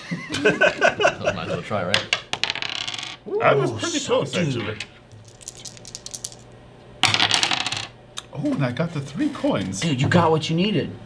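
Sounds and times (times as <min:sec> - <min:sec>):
plastic coins clattering on wood: 0:02.3 - 0:03.2, 0:05.2 - 0:06.4, 0:07.0 - 0:07.9.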